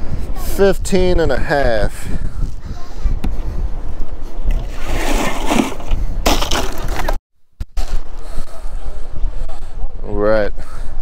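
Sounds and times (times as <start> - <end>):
wind buffeting microphone: 0.0 - 7.2.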